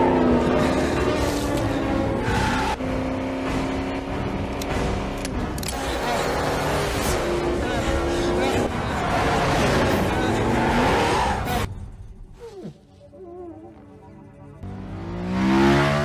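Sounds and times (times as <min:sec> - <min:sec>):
car engine revving hard: 0:14.7 - 0:16.0.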